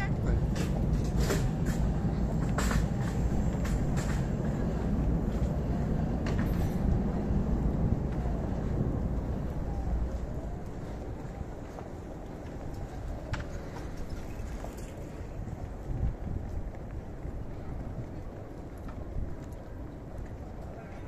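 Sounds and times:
low traffic rumble: 0.0s - 21.0s.

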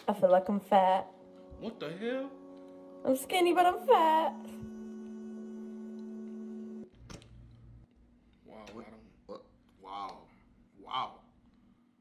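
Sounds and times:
steady musical tone: 0.0s - 6.9s.

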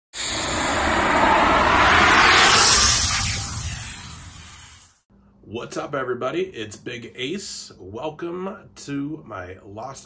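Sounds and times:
rising whoosh: 0.1s - 5.0s
low rumble: 0.2s - 4.9s.

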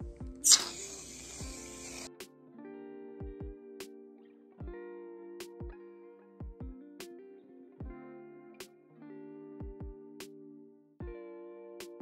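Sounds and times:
plucked guitar music: 0.0s - 12.0s
aerosol can spraying: 0.4s - 2.1s.

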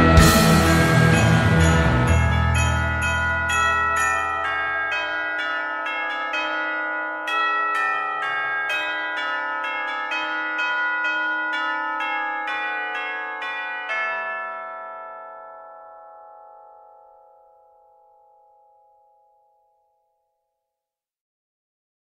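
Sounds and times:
chiming bell notes: 0.0s - 20.1s.

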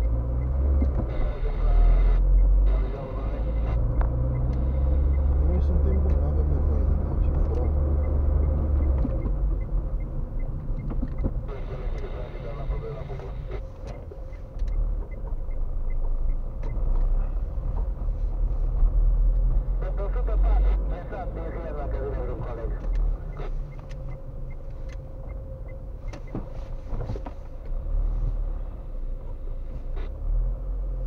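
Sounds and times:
car engine and road rumble: 0.0s - 31.0s.

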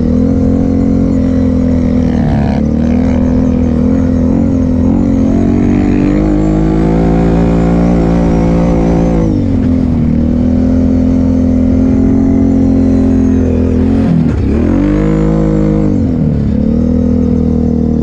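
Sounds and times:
atv engine running: 0.0s - 18.0s.

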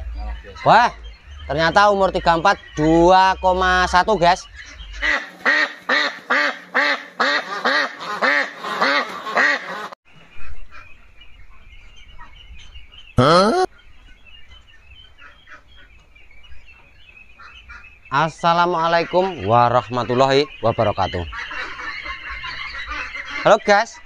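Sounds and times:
ducklings peeping: 0.0s - 24.0s
duck quacking rapidly: 2.0s - 10.0s, 21.1s - 24.0s.

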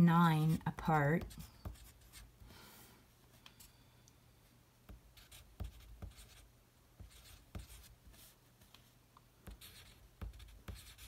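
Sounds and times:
pencil scratching on paper: 0.4s - 2.3s, 4.9s - 8.4s, 9.4s - 11.0s.

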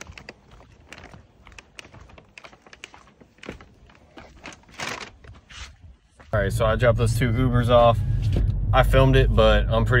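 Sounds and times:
bags rustling and tapping: 0.0s - 5.4s.

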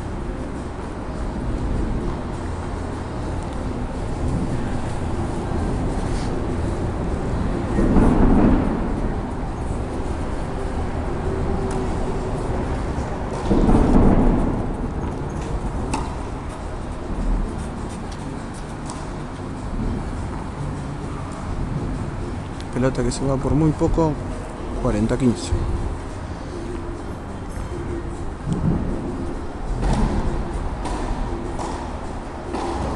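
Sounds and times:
low hall rumble: 0.0s - 32.9s
muffled swells: 0.0s - 32.9s
tennis balls being struck: 15.0s - 16.6s, 29.7s - 32.9s.

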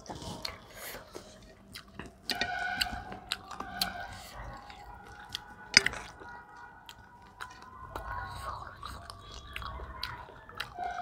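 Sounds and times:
people chewing food: 0.0s - 11.0s.

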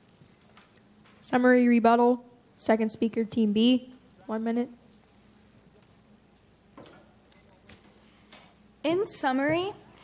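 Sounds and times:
girl speaking: 8.9s - 9.9s.

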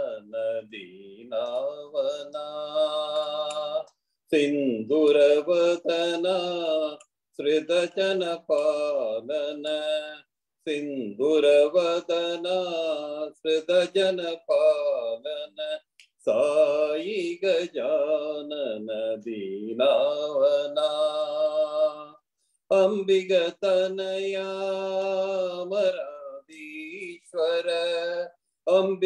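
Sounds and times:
man chanting devotional song: 0.0s - 29.0s.

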